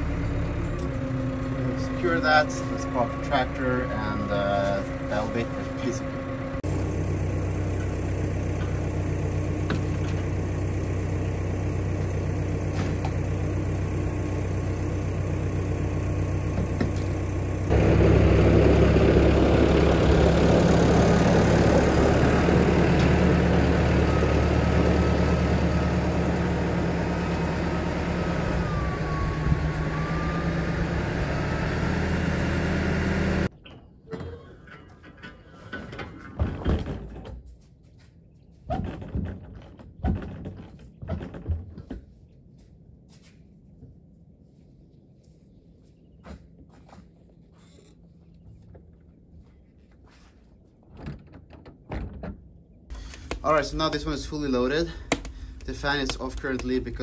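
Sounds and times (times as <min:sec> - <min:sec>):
tractor diesel engine running: 0:00.0 - 0:33.6, 0:52.9 - 0:57.0.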